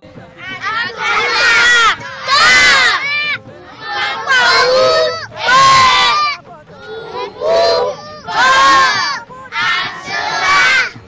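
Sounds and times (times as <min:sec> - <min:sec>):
children reciting in unison: 0:00.4 - 0:11.0.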